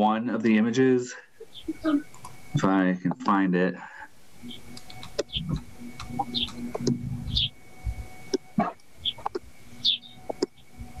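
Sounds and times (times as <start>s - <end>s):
faint steady hum: 0.0s - 11.0s
computer mouse clicks: 4.7s - 7.0s
keyboard clicks: 4.7s - 7.0s.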